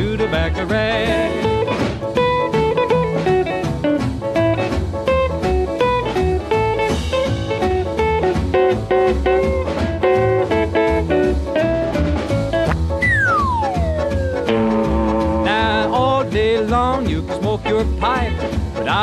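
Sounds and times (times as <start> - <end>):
western swing band playing: 0.0 - 19.0
plucked-string lead: 12.5 - 16.6.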